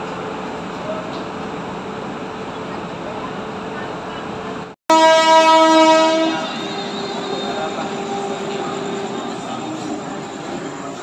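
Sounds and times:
locomotive air horn blast: 4.9s - 9.2s.

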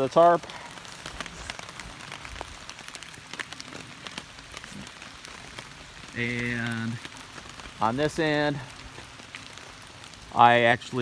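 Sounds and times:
rain hissing: 0.0s - 11.0s
raindrops ticking on tarp: 0.0s - 11.0s.

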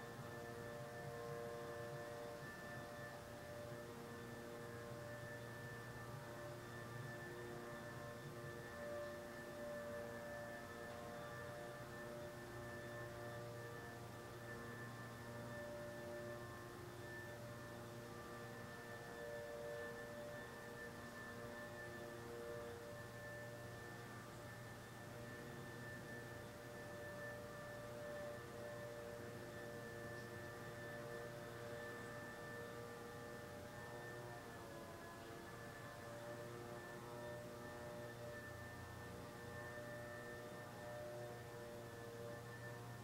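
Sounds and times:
faint drone of sustained tones: 0.0s - 43.0s.

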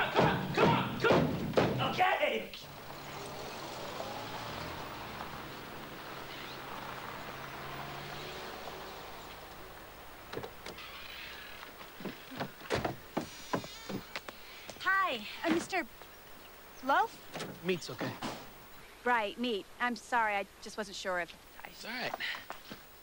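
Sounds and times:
footsteps and knocks: 0.1s - 2.0s, 11.6s - 14.8s
vehicle engine drone passing: 2.6s - 11.7s.

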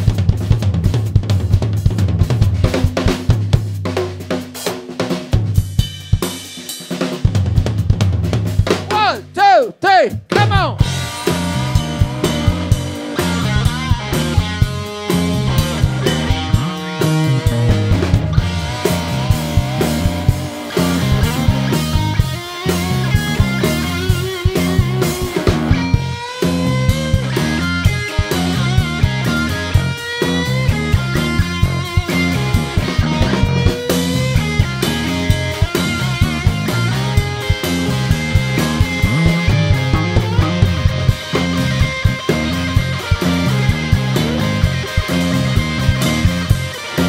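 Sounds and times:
drum kit: 0.0s - 47.0s
bass guitar riff: 8.7s - 47.0s
electric guitar lead lines: 10.4s - 47.0s.

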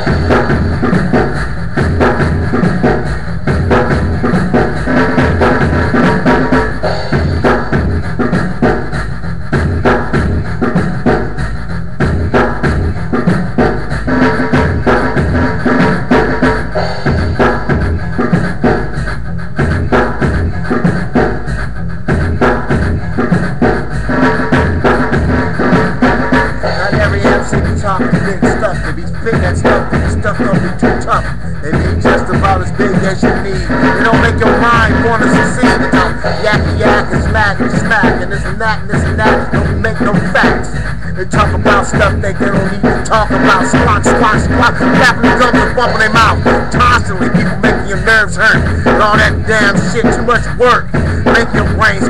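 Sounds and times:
looping programmed drum beat: 0.0s - 52.0s.

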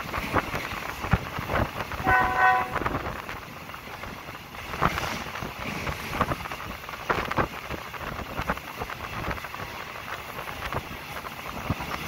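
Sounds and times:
train rumbling: 0.0s - 12.0s
wheels clacking on track: 0.0s - 12.0s
locomotive horn toot: 2.0s - 2.9s.

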